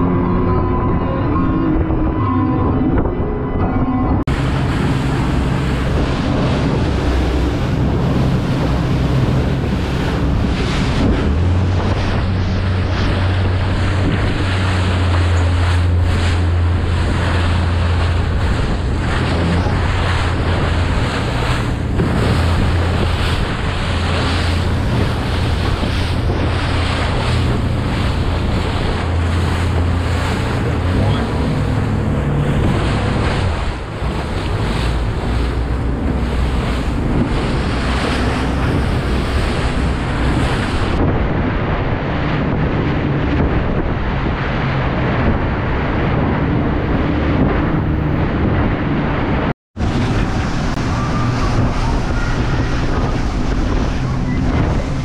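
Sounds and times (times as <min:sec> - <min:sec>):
outboard motors droning: 0:00.0 - 0:55.0
wind buffeting microphone: 0:00.0 - 0:55.0
rushing water and spray: 0:04.2 - 0:55.0.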